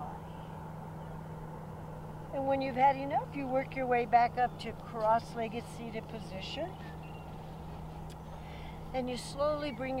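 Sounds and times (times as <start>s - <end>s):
constant low hum: 0.0s - 10.0s
low background rumble: 0.0s - 10.0s.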